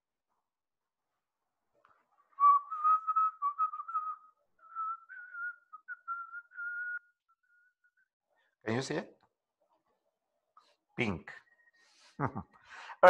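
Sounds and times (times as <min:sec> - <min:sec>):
person whistling a tune: 0:02.4 - 0:08.0.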